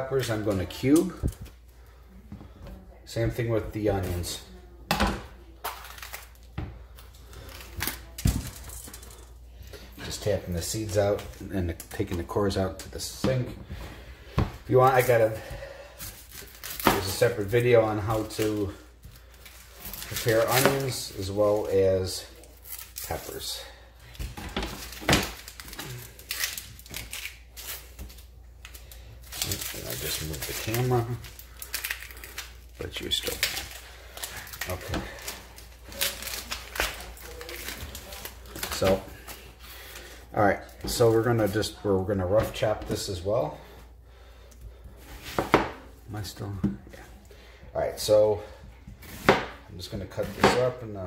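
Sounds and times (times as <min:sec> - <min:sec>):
onion skin crackling and rustling: 0:05.2 - 0:51.0.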